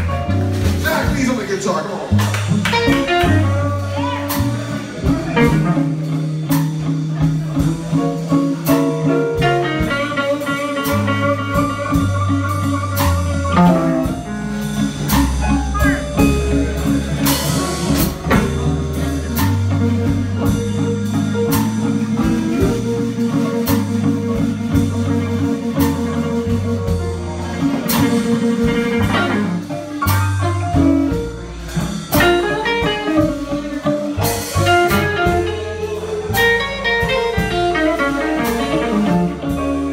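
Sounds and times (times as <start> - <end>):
bass: 0.0 - 39.9
drum kit: 0.0 - 39.9
electric guitars: 2.1 - 39.9.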